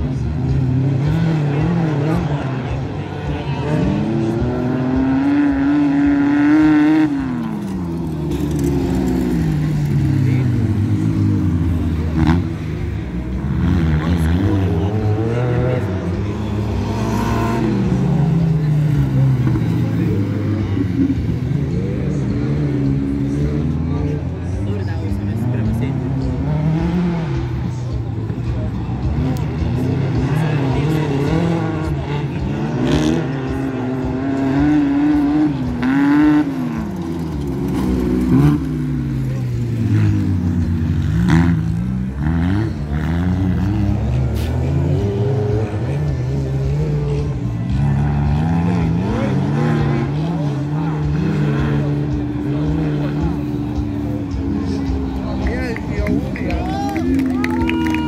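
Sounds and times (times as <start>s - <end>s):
buggy engines revving: 0.0s - 58.0s.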